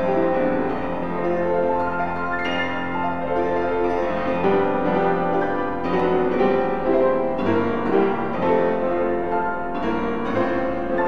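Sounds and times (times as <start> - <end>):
grand piano playing: 0.0 - 11.0.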